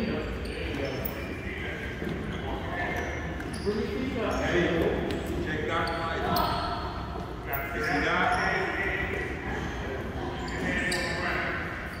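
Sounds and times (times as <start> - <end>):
players and coaches calling out: 0.0 - 12.0
shuffle of practice in gym: 0.0 - 12.0.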